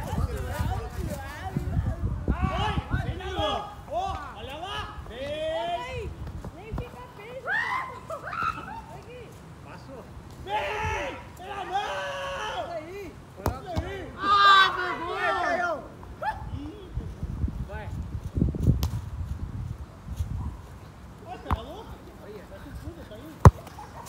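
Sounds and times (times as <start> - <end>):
players shouting: 10.4 - 16.0.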